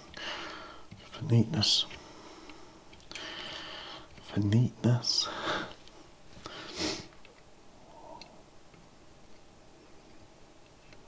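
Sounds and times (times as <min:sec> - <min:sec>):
short nose sniff: 0:06.5 - 0:07.1.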